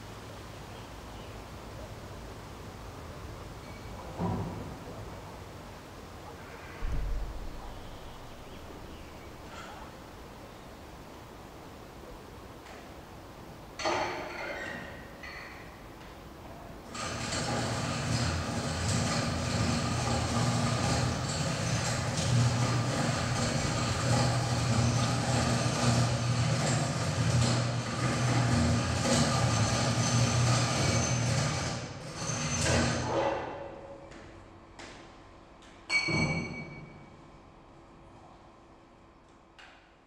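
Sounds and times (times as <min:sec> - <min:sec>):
machine humming and hissing: 0:00.0 - 0:15.1, 0:16.0 - 0:33.3.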